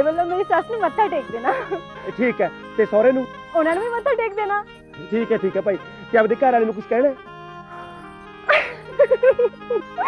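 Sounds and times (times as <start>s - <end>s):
background music: 0.0s - 10.0s
woman giggling: 8.5s - 10.0s.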